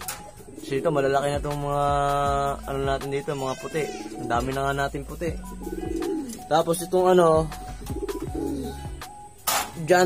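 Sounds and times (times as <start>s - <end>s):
pigeons cooing: 0.0s - 9.6s.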